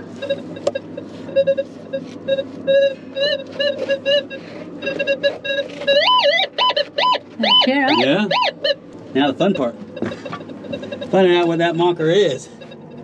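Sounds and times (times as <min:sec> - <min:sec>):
metal detector beeps: 0:00.0 - 0:13.0.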